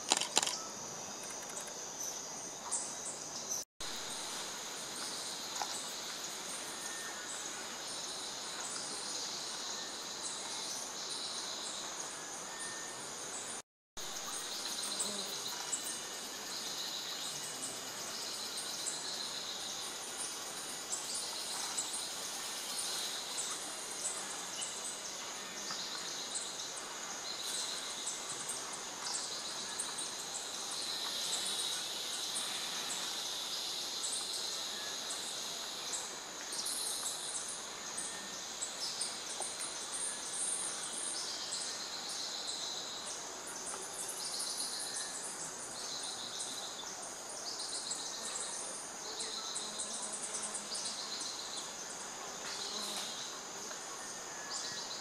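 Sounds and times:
insect buzzing trills: 0:00.0 - 0:43.0, 0:47.6 - 0:55.0
steady high hiss: 0:00.0 - 0:55.0.

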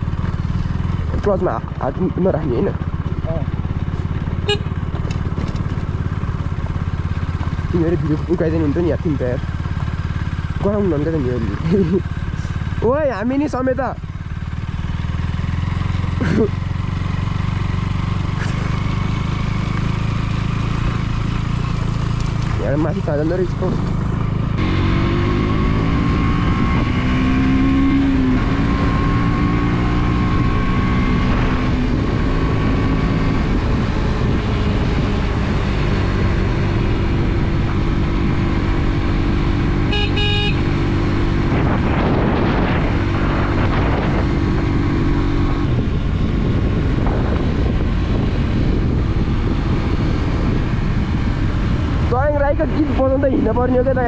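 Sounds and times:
motorcycle engine running: 0:00.0 - 0:54.0
wind and road noise: 0:00.0 - 0:54.0
short horn toot: 0:04.4 - 0:04.8, 0:39.9 - 0:40.7.

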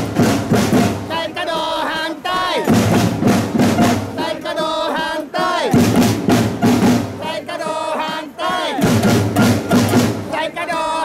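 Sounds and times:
protest drums beating: 0:00.0 - 0:11.0
crowd chanting: 0:00.6 - 0:11.0.

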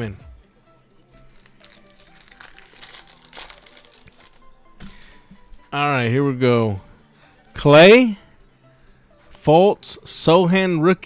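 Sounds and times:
faint background music: 0:00.0 - 0:11.0
foil wrapper crinkling: 0:01.2 - 0:05.2.

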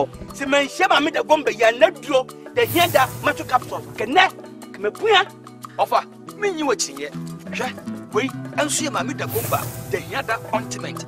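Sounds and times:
background music with low drone: 0:02.3 - 0:11.0
person speaking: 0:02.6 - 0:04.3.

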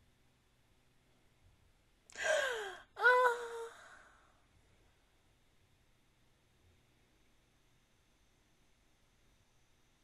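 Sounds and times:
person sighing: 0:02.1 - 0:04.4.

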